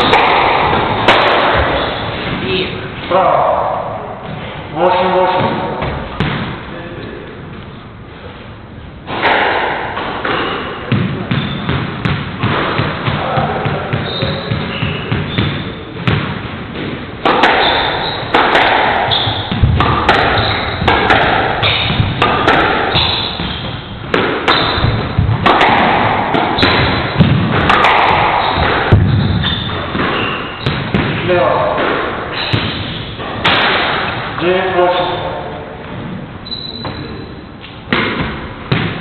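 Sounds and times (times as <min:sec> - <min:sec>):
squash ball hitting rackets and walls: 0:00.0 - 0:07.0, 0:09.0 - 0:39.0
shoes squeaking on wooden floor: 0:11.4 - 0:11.7, 0:14.0 - 0:16.0, 0:17.6 - 0:18.3, 0:19.1 - 0:19.6, 0:20.3 - 0:20.9, 0:22.9 - 0:25.0, 0:28.3 - 0:30.9, 0:36.4 - 0:37.8.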